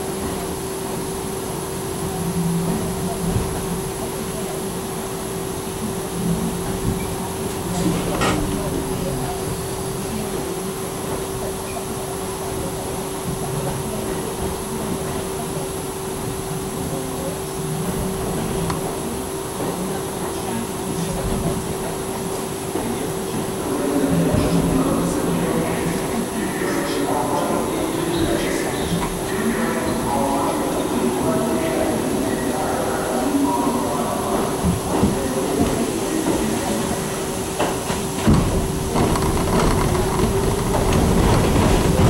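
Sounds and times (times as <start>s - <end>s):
subway wheel and track rumble: 0.0s - 42.0s.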